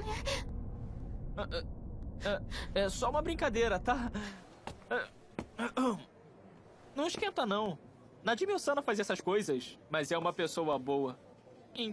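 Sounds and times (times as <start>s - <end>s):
low steady rumble: 0.0s - 4.2s.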